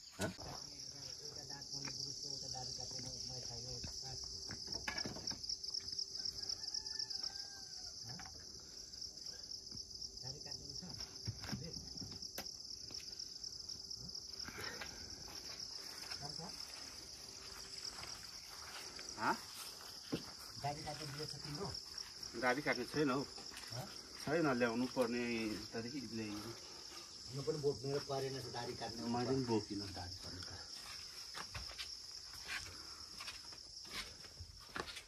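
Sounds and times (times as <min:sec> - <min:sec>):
insects chorus: 0:00.0 - 0:35.0.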